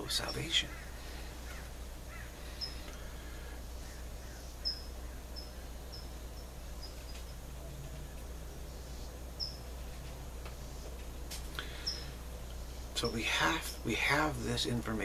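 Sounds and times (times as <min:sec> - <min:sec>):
small bird chirping: 0:00.0 - 0:11.0, 0:11.6 - 0:14.0
steady low hum: 0:00.0 - 0:15.0.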